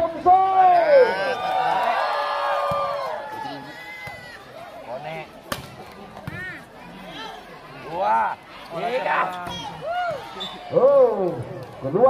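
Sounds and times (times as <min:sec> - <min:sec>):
spectators shouting: 0:00.0 - 0:05.2, 0:06.2 - 0:12.0.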